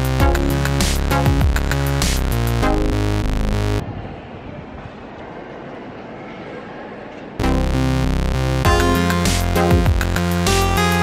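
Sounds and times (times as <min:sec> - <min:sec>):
cathedral interior rumble and murmur: 0:03.8 - 0:07.9.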